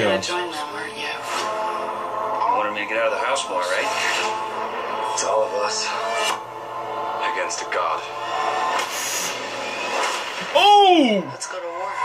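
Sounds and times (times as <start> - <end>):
held soundtrack chord: 0.0 - 8.7.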